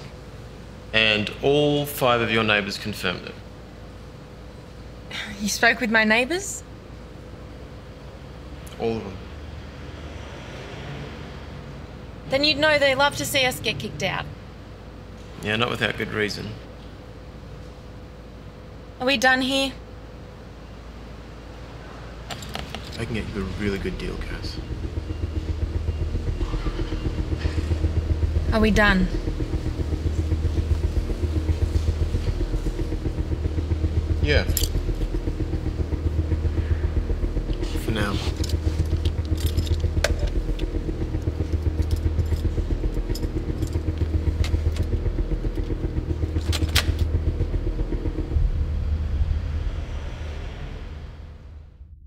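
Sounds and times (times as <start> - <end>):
car engine idling: 22.3 - 51.9.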